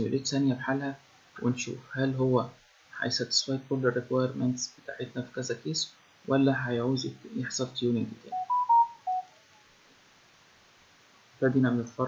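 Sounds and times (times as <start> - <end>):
electronic alert chime: 8.3 - 9.3.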